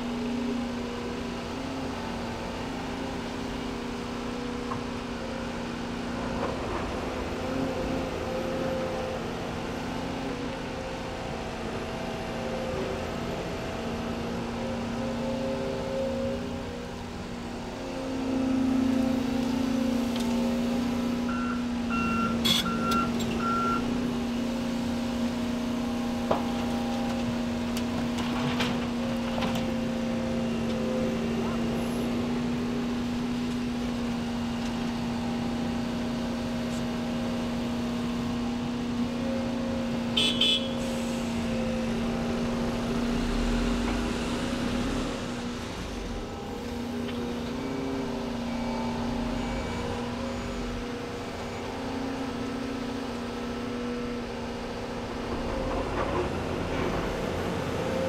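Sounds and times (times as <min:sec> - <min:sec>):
excavator engine and hydraulics: 0:00.0 - 0:58.0.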